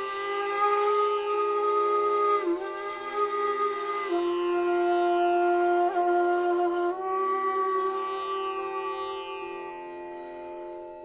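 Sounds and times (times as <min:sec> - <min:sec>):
bamboo flute long note: 0:00.0 - 0:11.0.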